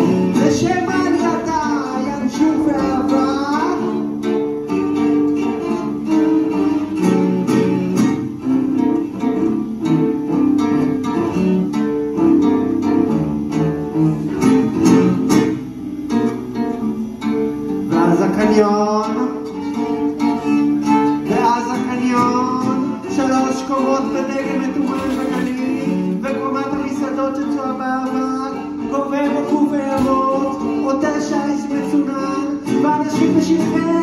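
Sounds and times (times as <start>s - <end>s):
plucked guitar notes: 0.0s - 34.0s.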